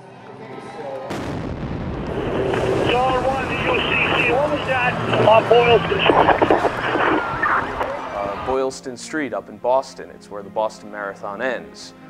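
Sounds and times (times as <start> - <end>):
bomb blast: 1.1 - 8.5
dense roar of noise: 1.8 - 8.5
voices crying out: 2.8 - 8.5.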